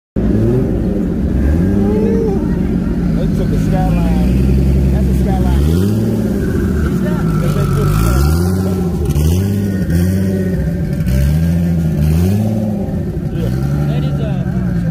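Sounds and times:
turbocharged engine revving: 0:00.2 - 0:14.9.

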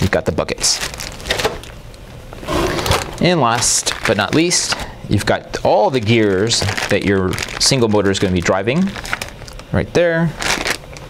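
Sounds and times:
plastic bags crinkling: 0:00.0 - 0:01.8, 0:02.5 - 0:11.0.

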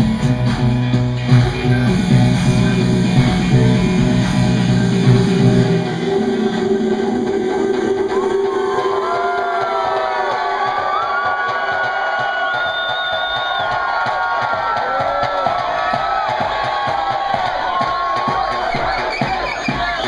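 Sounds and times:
club crowd cheering and shouting: 0:00.0 - 0:20.0
electronic dance music: 0:00.0 - 0:20.0.

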